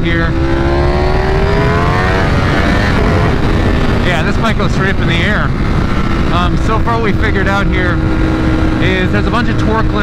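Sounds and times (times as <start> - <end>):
motorcycle engine accelerating: 0.0 - 10.0
wind rush on microphone: 0.0 - 10.0.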